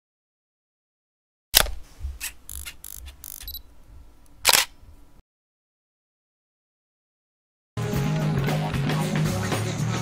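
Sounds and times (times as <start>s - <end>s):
sharp clicks: 1.6s - 3.6s, 4.4s - 4.8s.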